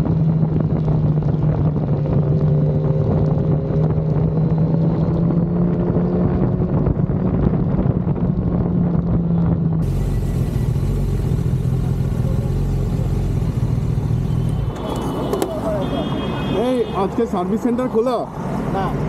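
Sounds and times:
wind on microphone: 0.0 - 9.9
low engine hum: 0.0 - 15.7
motorcycle engine running: 9.8 - 15.3.

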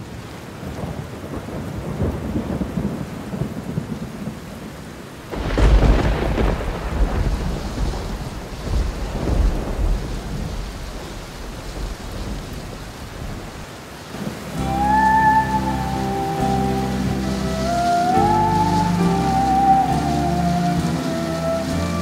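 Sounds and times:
steady rain: 0.0 - 22.0
thunder crack and rumble: 0.7 - 4.5, 5.3 - 15.1.

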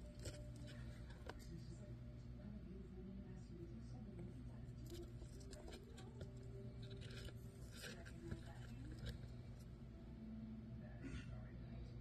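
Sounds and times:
hamster nibbling scratchy crackles: 0.0 - 1.7, 4.2 - 9.7.

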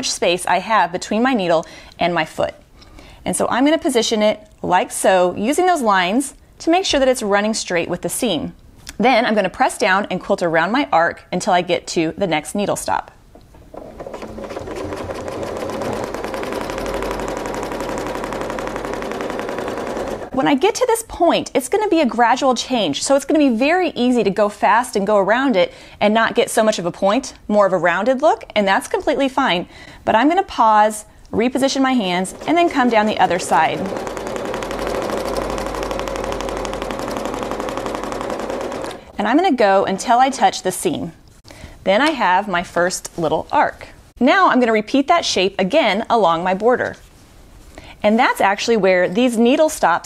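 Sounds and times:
sewing machine stitching fast: 13.8 - 20.5, 31.4 - 40.2.

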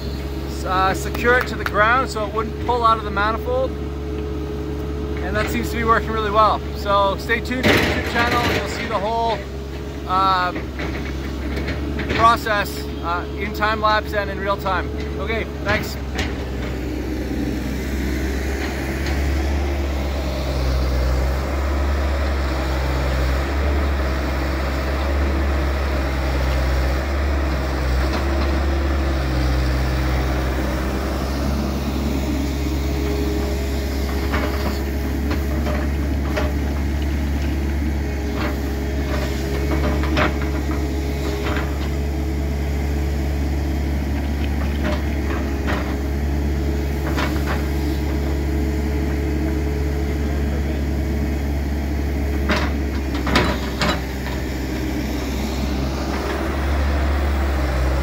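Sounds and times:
excavator diesel engine running: 0.0 - 58.0
sharp knocks and clatters: 7.5 - 9.4, 15.0 - 16.8, 34.1 - 42.0.

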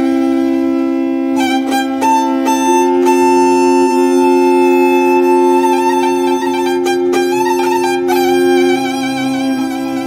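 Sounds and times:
steady low drone: 0.0 - 10.0
violin long high note: 0.0 - 10.0.

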